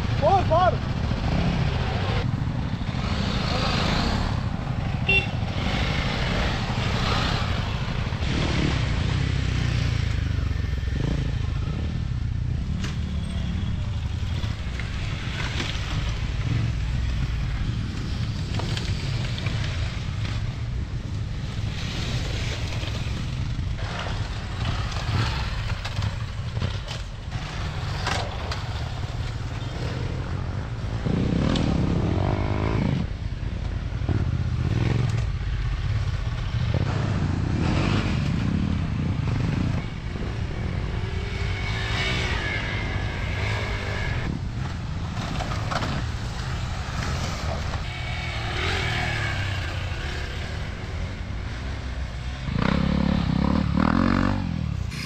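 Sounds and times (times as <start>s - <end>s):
motorcycles riding past: 0.0s - 55.0s.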